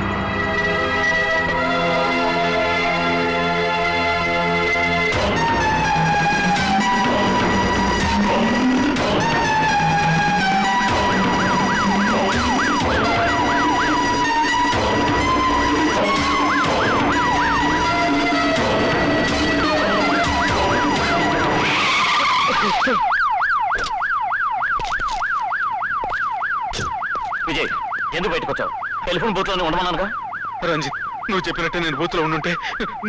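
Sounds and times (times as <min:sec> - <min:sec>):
film music: 0:00.0 - 0:33.0
siren wailing: 0:00.0 - 0:33.0.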